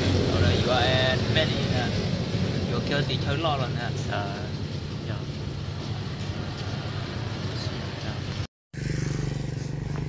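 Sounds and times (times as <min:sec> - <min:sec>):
motorcycle engine idling: 0:08.8 - 0:10.0.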